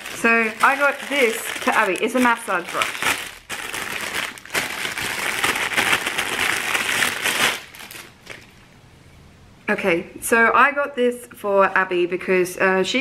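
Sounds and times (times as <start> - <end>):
plastic bag crinkling: 0.0 - 8.6.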